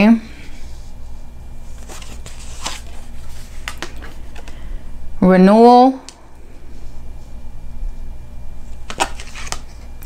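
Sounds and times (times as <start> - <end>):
faint steady hum: 0.0 - 10.0
cards snapping and tapping: 3.6 - 4.6, 8.8 - 9.7.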